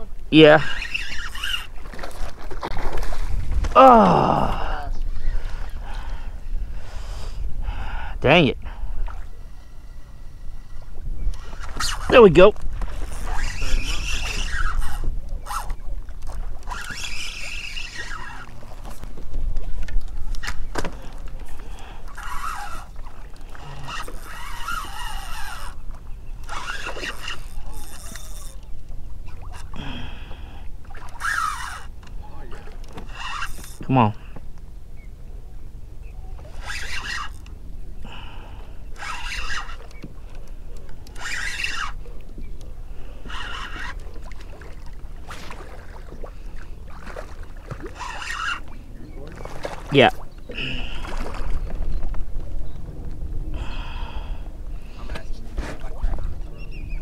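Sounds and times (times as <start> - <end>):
wind on microphone: 2.6 - 31.1, 41.0 - 57.0.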